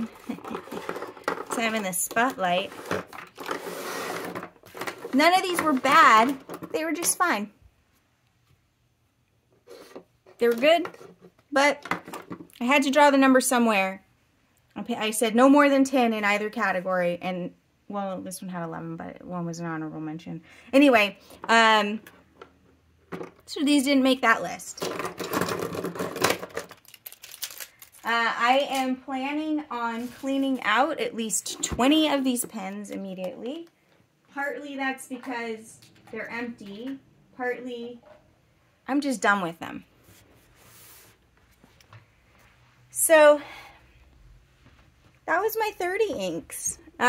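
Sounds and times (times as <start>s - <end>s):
plastic pens clicking and clattering: 0.0s - 7.2s, 24.7s - 28.1s
pens sliding on tabletop: 0.7s - 6.4s, 40.0s - 41.2s.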